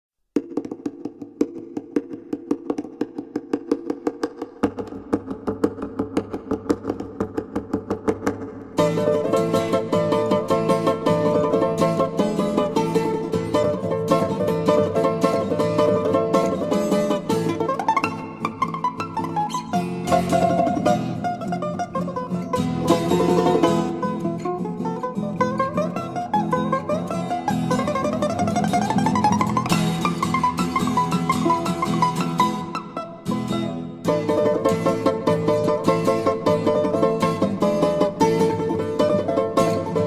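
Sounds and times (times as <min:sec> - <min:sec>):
balalaika plucked notes: 0:00.4 - 0:40.0.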